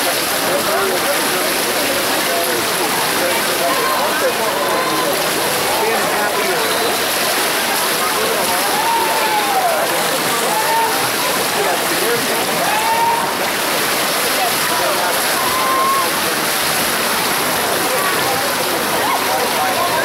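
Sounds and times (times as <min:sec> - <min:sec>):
crowd voices and shouts: 0:00.0 - 0:20.0
swimmer splashing in pool: 0:00.0 - 0:20.0.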